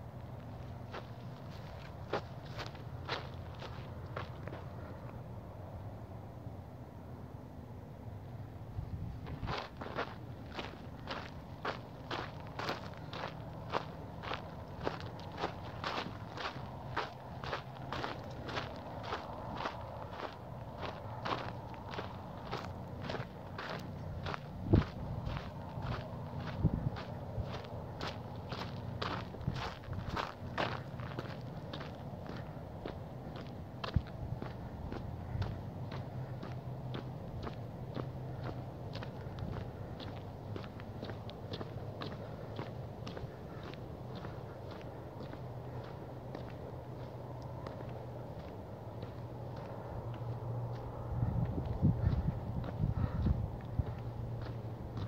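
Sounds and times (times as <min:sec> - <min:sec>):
steady low hum: 0:00.0 - 0:55.0
footsteps walking: 0:00.2 - 0:05.2, 0:09.1 - 0:55.0.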